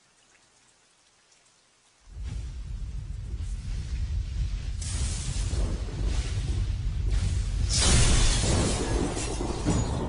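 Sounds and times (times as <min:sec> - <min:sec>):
faint hiss with crackle: 0:00.0 - 0:10.0.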